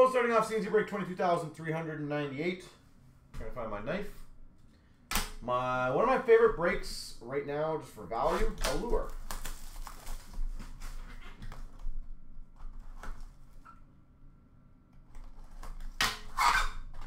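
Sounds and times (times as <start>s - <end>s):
shrink-wrap crinkling: 8.2s - 11.8s.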